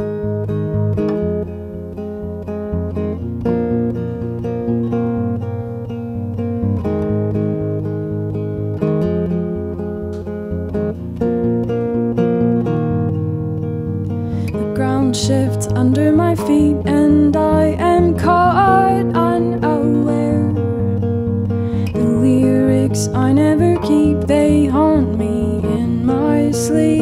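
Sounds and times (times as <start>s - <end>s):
acoustic guitars playing: 0.0s - 27.0s.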